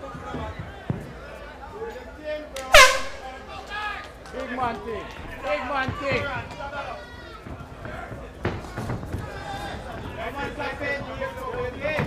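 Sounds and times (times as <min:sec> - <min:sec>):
faint crowd chatter: 0:00.0 - 0:12.0
air horn blast: 0:02.7 - 0:03.6.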